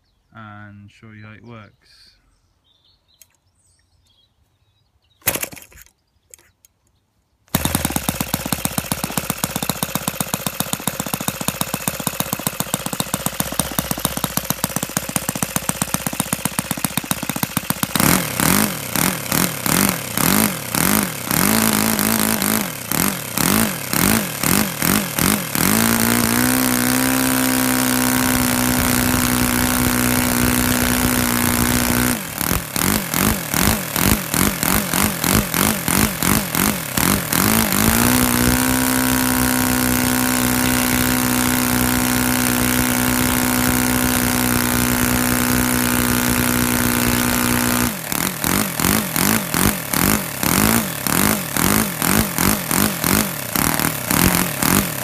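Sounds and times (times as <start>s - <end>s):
model aircraft engine revving: 7.5s - 55.0s.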